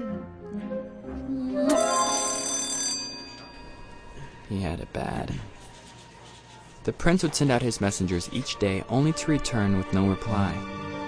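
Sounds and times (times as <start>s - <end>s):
bell ringing: 1.7s - 4.1s.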